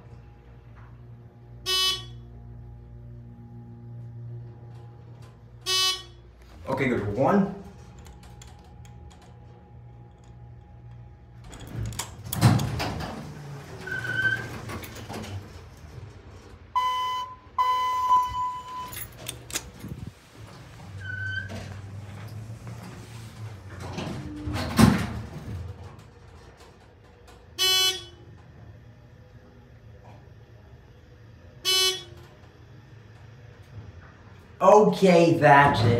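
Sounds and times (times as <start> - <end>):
elevator doors clattering: 0.6 - 35.9
elevator chime beep: 1.5 - 6.7, 13.8 - 14.9, 16.7 - 19.1, 27.6 - 28.3, 31.6 - 32.3
short electronic beep: 1.6 - 2.3, 5.7 - 6.2.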